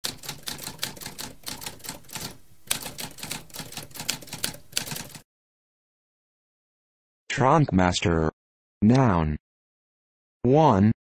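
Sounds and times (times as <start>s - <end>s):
typewriter keys clicking: 0.0s - 5.2s.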